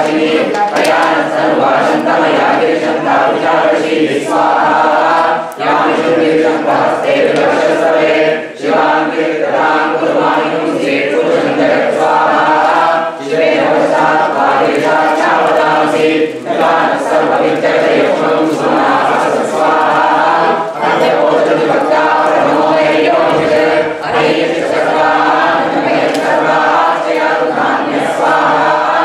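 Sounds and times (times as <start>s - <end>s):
voices chanting in unison: 0.0s - 29.0s.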